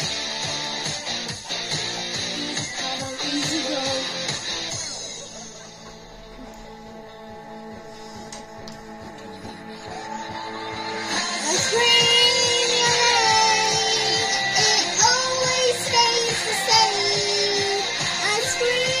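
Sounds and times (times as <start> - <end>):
song with sung melody: 0.0 - 19.0.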